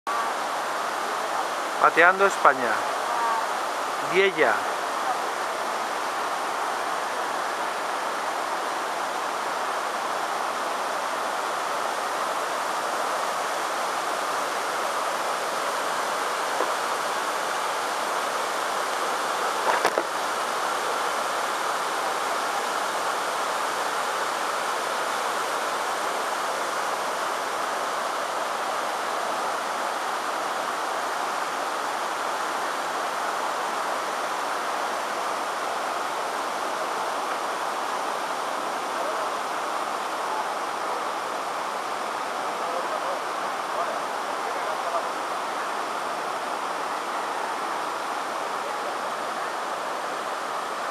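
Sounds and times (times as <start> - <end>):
river rushing over stones: 0.1 - 50.9.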